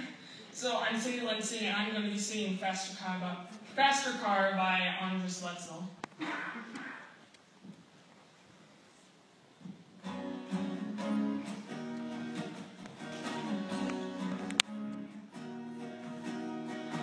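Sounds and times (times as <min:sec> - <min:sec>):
guitar strummed and plucked: 0:10.0 - 0:17.0.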